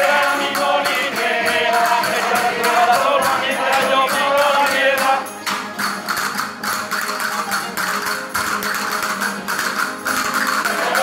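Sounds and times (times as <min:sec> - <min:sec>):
folk string band strumming: 0:00.0 - 0:11.0
percussion beat: 0:00.0 - 0:11.0.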